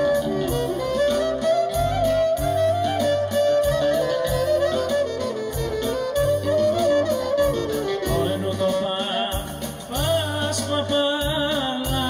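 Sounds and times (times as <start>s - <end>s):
folk band playing dance tune: 0.0s - 12.0s.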